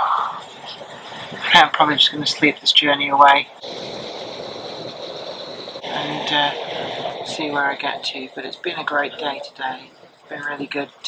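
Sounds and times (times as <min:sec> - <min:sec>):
high-pitched whine: 0:00.0 - 0:11.0
train running noise: 0:00.0 - 0:11.0.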